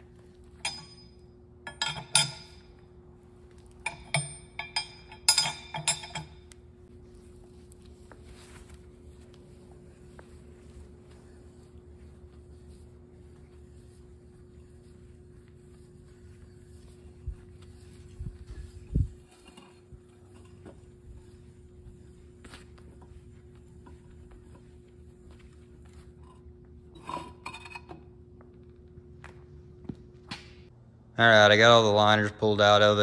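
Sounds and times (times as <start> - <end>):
steady hum: 0.0 - 33.0.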